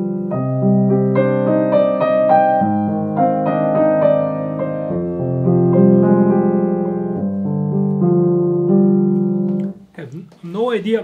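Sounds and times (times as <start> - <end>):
grand piano slow chords: 0.0 - 9.8.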